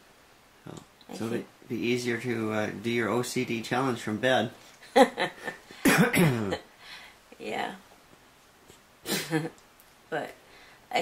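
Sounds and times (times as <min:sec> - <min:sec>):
woman coughing: 0:05.8 - 0:06.6.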